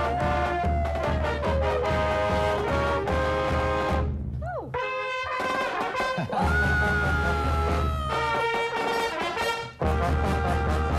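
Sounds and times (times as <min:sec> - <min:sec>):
brass band playing held notes: 0:00.0 - 0:04.2, 0:04.8 - 0:10.9.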